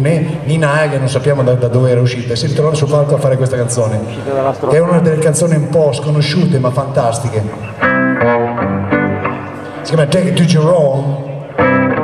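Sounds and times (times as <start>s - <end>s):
electric guitar chords ringing: 7.5s - 12.0s.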